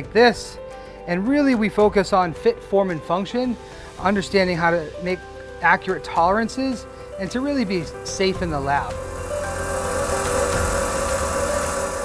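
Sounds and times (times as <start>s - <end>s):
milling machine cutting: 7.2s - 12.0s.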